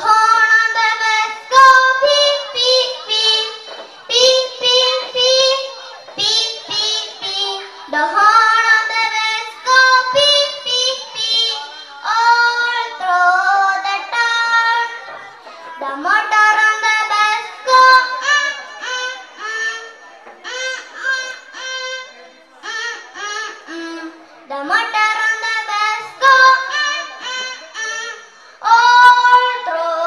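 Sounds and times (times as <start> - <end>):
girl singing into a microphone: 0.0 - 30.0.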